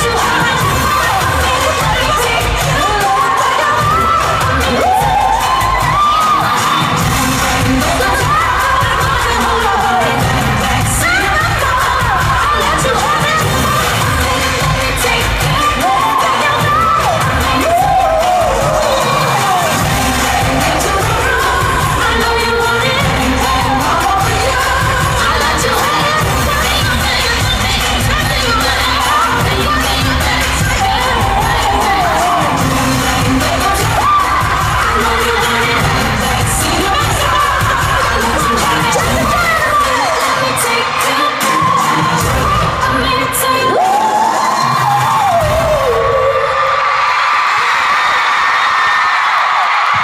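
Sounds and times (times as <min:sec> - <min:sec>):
amplified pop music with vocals: 0:00.0 - 0:50.0
crowd cheering: 0:00.0 - 0:50.0.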